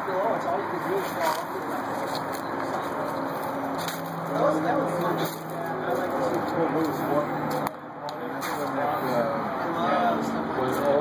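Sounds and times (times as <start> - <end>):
men talking over one another: 0.0 - 11.0.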